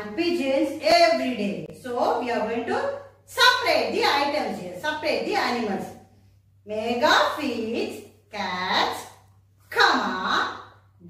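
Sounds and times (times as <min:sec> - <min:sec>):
woman speaking: 0:00.0 - 0:11.0.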